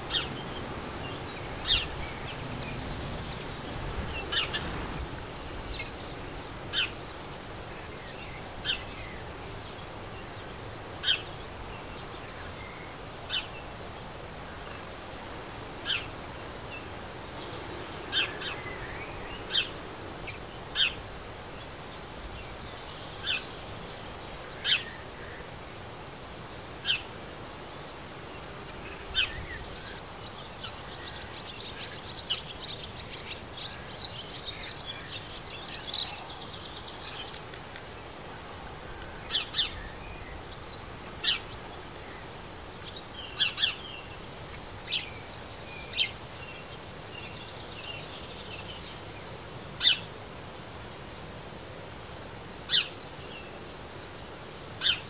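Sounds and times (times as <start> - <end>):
robin tick calls: 37.0 - 38.0.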